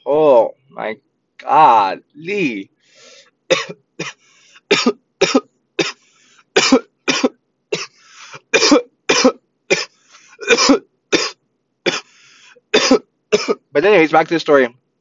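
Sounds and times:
wheezy breaths: 0:02.8 - 0:03.4, 0:04.2 - 0:04.7, 0:06.0 - 0:06.6, 0:07.9 - 0:08.5, 0:09.9 - 0:10.5, 0:12.0 - 0:12.7
man coughing: 0:03.5 - 0:06.0, 0:06.6 - 0:12.2, 0:12.8 - 0:13.7.

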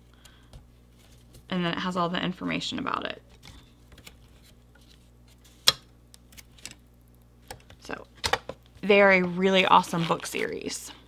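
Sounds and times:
woman speaking: 0:01.5 - 0:03.2, 0:07.8 - 0:08.1, 0:08.8 - 0:11.0.

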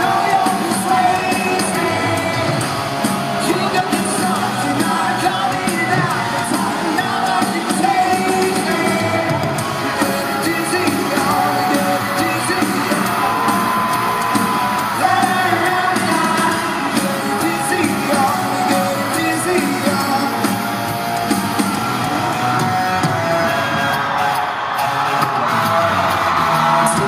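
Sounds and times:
audience yelling and whooping: 0:00.0 - 0:27.0
live pop-rock band: 0:00.0 - 0:27.0.

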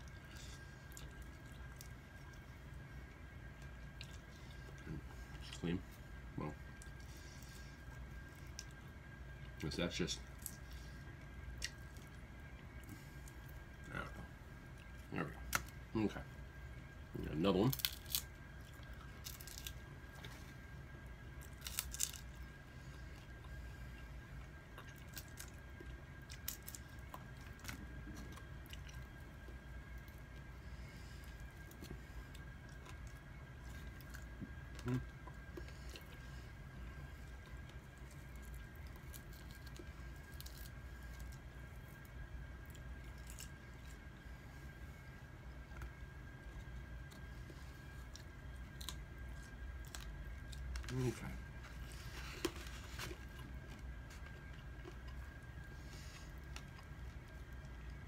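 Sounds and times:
faint steady hum: 0:00.0 - 0:58.0
small crunches: 0:17.6 - 0:20.3, 0:21.4 - 0:22.4.

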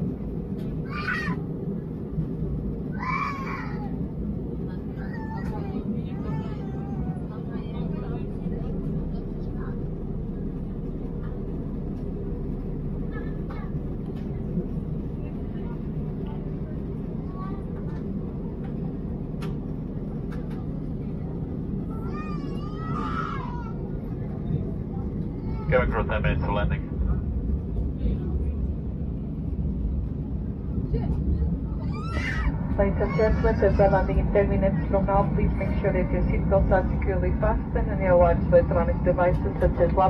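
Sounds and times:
airliner cabin engine drone: 0:00.0 - 0:40.0
faint passenger voices: 0:00.0 - 0:40.0
cabin announcement over speaker: 0:04.4 - 0:29.2, 0:30.8 - 0:40.0.

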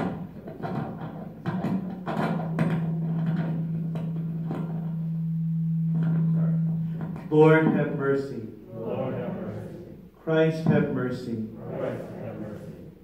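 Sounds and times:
steady low note: 0:02.4 - 0:10.1
faint voice sounds: 0:11.5 - 0:13.0.

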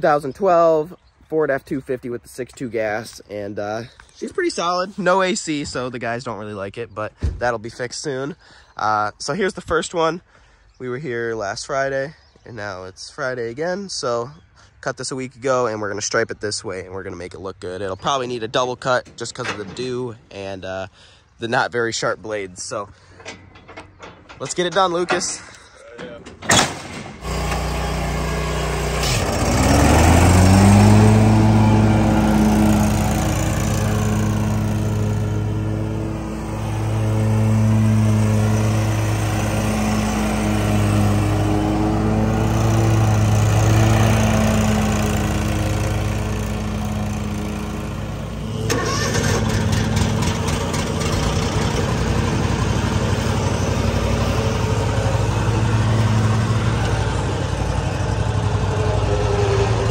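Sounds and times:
rough engine rattling: 0:22.8 - 0:59.9
mower engine revving: 0:26.6 - 0:59.9.

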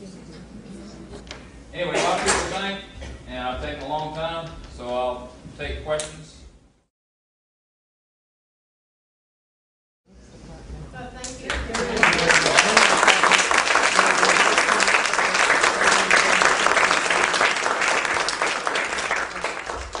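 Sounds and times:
audience applauding: 0:11.5 - 0:20.0.

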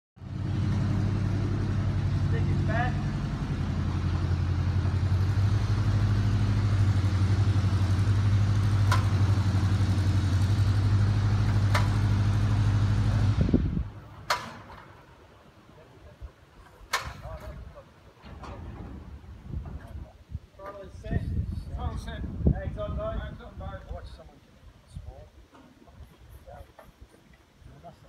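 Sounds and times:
engine idling: 0:00.2 - 0:15.3.

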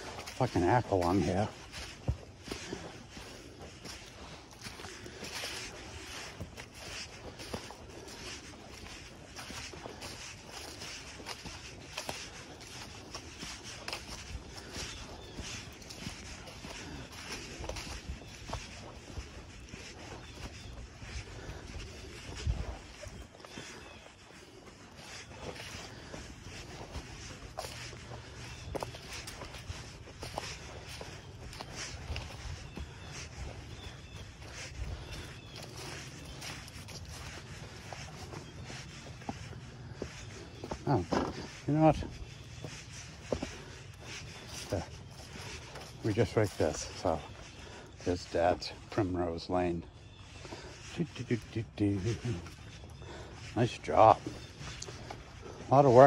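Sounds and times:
footsteps through dry leaves: 0:00.0 - 0:56.0.

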